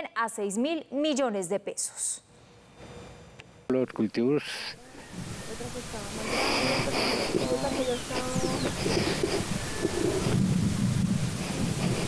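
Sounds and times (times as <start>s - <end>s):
wind buffeting microphone: 4.8s - 12.0s.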